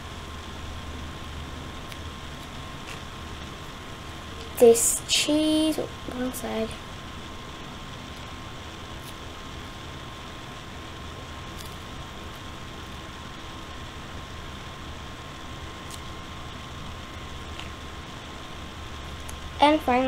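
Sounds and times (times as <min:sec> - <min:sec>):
faint high hum: 0:00.0 - 0:20.0
room hiss: 0:00.0 - 0:20.0.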